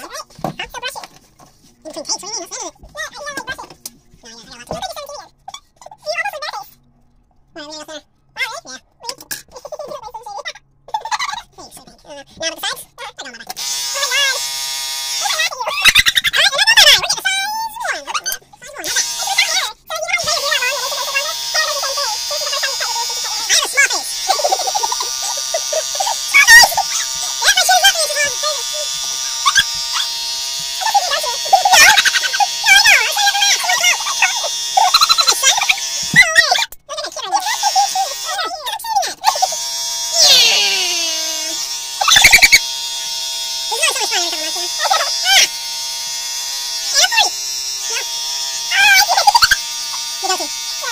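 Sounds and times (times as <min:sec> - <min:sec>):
beard trimmer buzzing: 0:13.5 - 0:15.4, 0:18.8 - 0:19.6, 0:20.2 - 0:36.3, 0:37.4 - 0:38.6, 0:39.2 - 0:50.9
sped-up high-pitched voices: 0:40.2 - 0:42.6.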